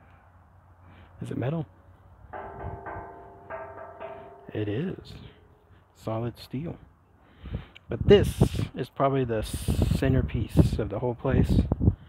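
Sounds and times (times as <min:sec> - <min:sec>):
steel ringing bell-like tone: 0:02.4 - 0:05.6
hand tapping steel sculpture: 0:02.4 - 0:05.7.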